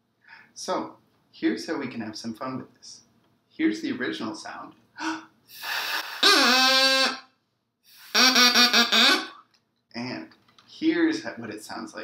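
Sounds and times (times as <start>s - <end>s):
breath of air hiss: 5.0s - 7.1s, 7.9s - 8.2s.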